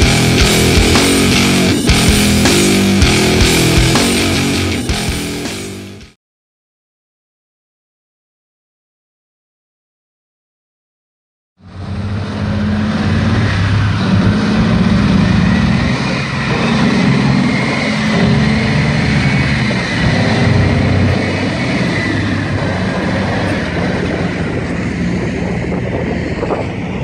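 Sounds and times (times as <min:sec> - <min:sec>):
armoured vehicle engine under load: 0:11.6 - 0:27.0
vehicle tracks clanking: 0:12.0 - 0:27.0.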